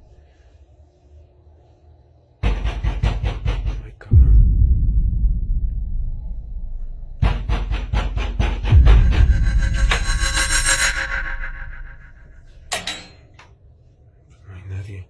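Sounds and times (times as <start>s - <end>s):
loud banging on a door: 2.4s - 4.6s, 7.2s - 9.3s.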